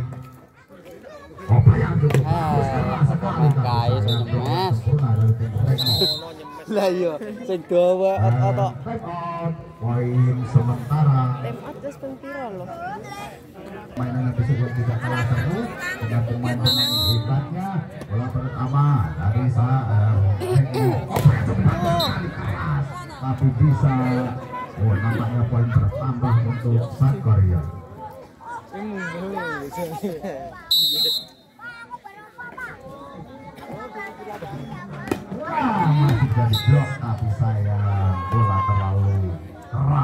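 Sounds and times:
children chattering: 0:00.0 - 0:04.8, 0:05.4 - 0:08.2, 0:09.8 - 0:40.0
crowd voices: 0:00.0 - 0:40.0
referee's whistle blast: 0:05.7 - 0:06.4, 0:16.6 - 0:17.3, 0:30.7 - 0:31.5, 0:36.5 - 0:36.8.

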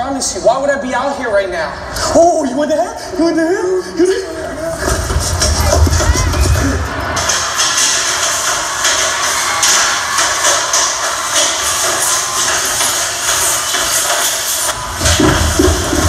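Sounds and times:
music over arena speakers: 0:00.0 - 0:16.0.

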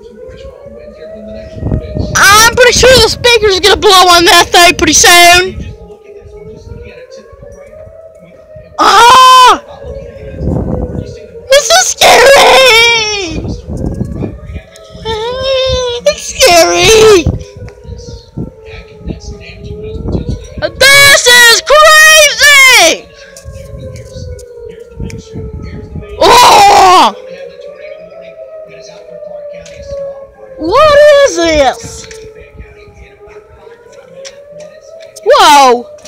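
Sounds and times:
tornado siren wailing: 0:00.0 - 0:36.0
person wailing: 0:15.0 - 0:17.2, 0:26.2 - 0:27.1.

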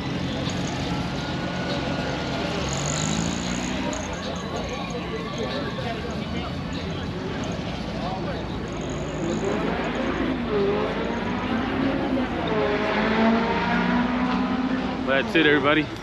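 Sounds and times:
background crowd din: 0:00.0 - 0:16.0
people talking nearby: 0:00.0 - 0:16.0.

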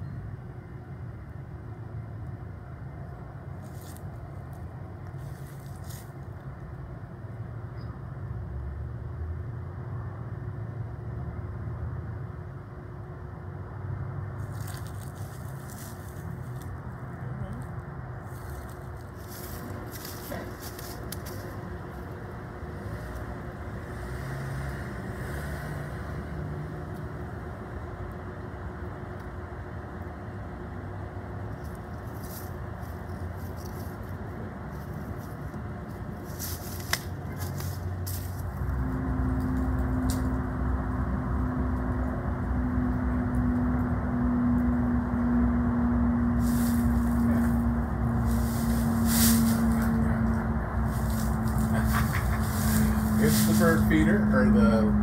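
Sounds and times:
stronger steady drone: 0:37.9 - 0:55.0.

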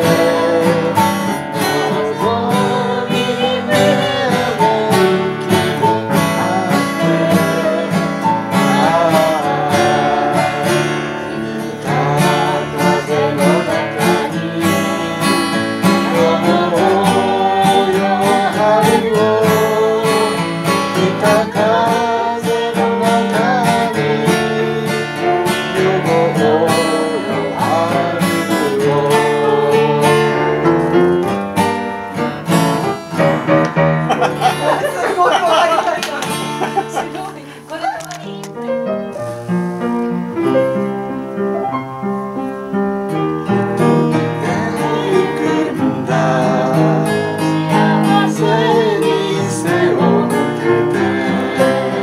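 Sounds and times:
group singing together: 0:00.0 - 0:38.0, 0:43.6 - 0:52.0
strummed acoustic guitar: 0:00.0 - 0:52.0.

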